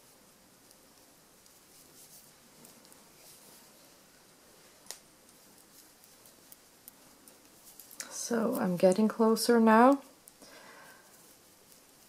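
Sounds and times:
knitting needles clicking: 4.8s - 12.0s.

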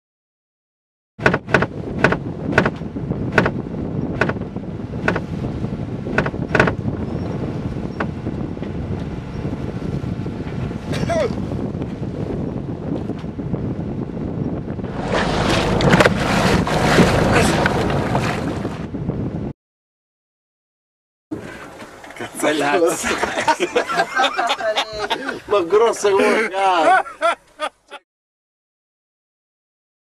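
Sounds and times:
water noise: 1.2s - 19.1s, 21.3s - 27.0s
wind: 1.2s - 19.5s, 21.3s - 28.0s
person crying out: 11.0s - 11.4s.

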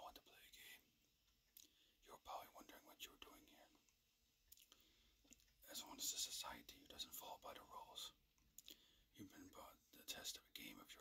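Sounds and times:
man whispering: 0.0s - 1.0s, 1.6s - 4.0s, 5.6s - 11.0s.

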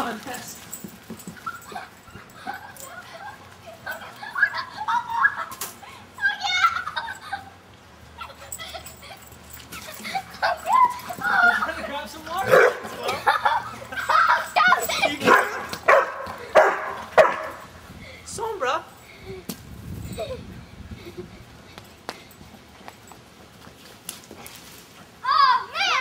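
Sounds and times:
dog barking: 12.4s - 12.9s, 15.2s - 17.6s.

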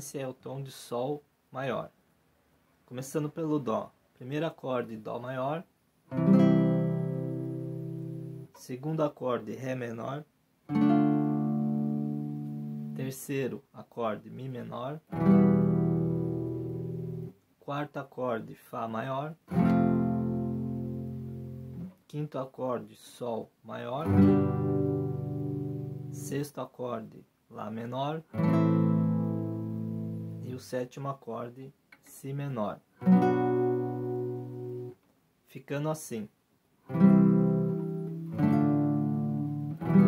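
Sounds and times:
acoustic guitar chord ringing: 6.1s - 8.5s, 10.7s - 13.0s, 15.1s - 17.3s, 19.5s - 21.9s, 24.0s - 26.3s, 28.3s - 30.5s, 33.0s - 34.9s, 36.9s - 40.0s.

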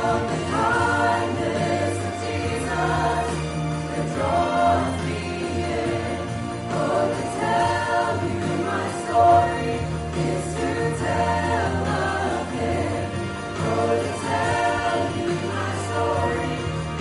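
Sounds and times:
choir singing in harmony: 0.0s - 17.0s.

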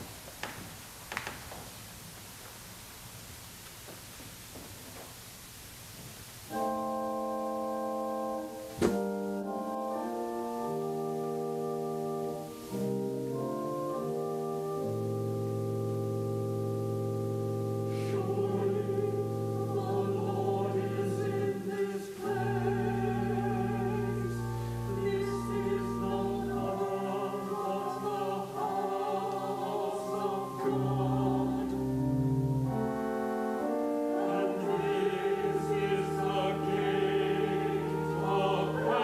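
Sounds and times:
organ sustained chords: 6.5s - 39.0s
singing with vibrato: 17.5s - 32.4s, 33.8s - 39.0s.

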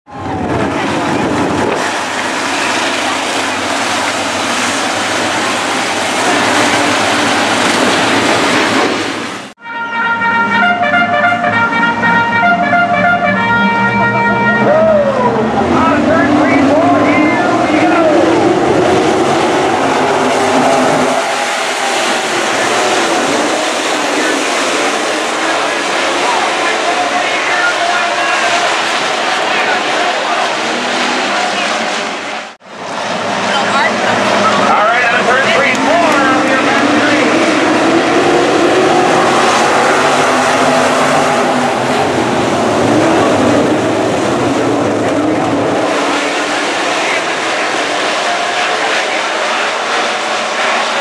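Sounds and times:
race car engines: 0.0s - 51.0s.

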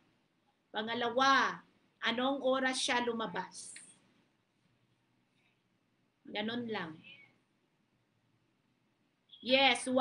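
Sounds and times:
woman speaking: 0.7s - 3.9s, 6.3s - 7.3s, 9.4s - 10.0s.

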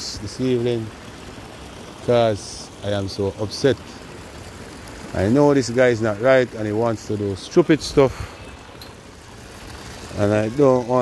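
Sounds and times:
distant road traffic: 0.0s - 11.0s.

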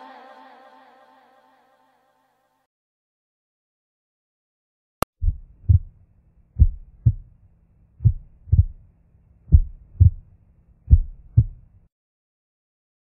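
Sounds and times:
heartbeat thumps: 5.2s - 6.0s, 6.6s - 7.4s, 8.0s - 8.8s, 9.5s - 10.3s, 10.9s - 11.7s
faint low hum: 5.2s - 11.9s.

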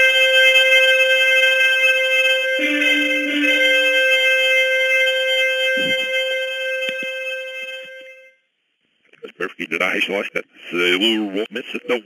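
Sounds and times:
held wind instrument note: 0.0s - 8.2s.

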